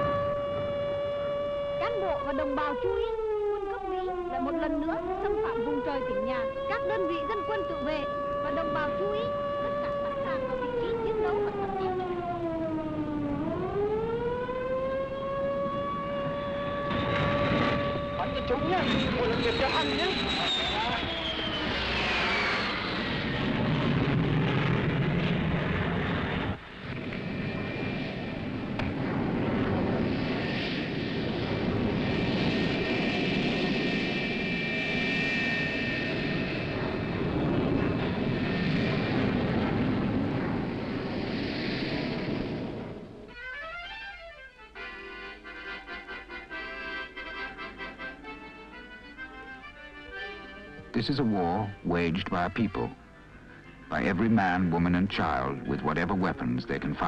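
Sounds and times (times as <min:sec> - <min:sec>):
air-raid siren wailing: 0:00.0 - 0:57.0
steady rushing noise: 0:36.1 - 0:43.3.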